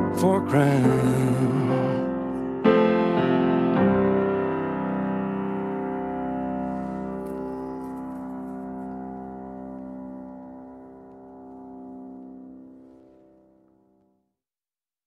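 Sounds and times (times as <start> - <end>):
keyboard chord ringing: 0.0 - 13.7.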